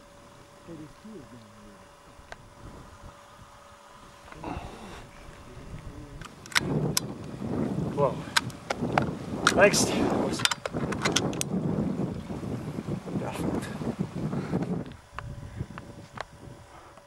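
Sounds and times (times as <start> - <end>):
wind on microphone: 0.0 - 17.0
sharp clicks: 6.2 - 7.3.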